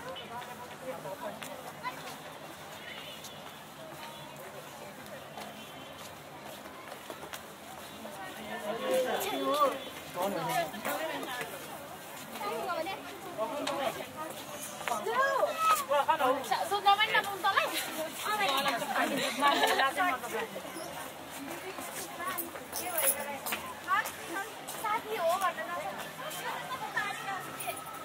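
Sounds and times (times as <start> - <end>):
faint chatter of passers-by: 0.0 - 28.0
footsteps on stone paving: 0.0 - 28.0.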